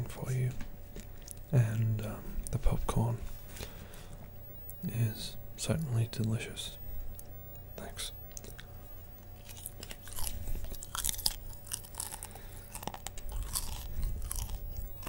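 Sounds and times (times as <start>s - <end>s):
popcorn being chewed: 0.1s - 4.8s, 7.1s - 15.0s.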